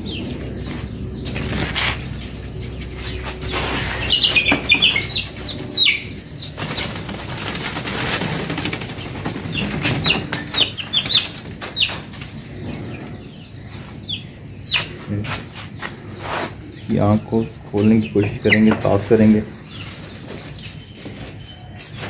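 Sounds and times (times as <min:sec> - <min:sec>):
birds flapping wings: 0:02.8 - 0:12.4.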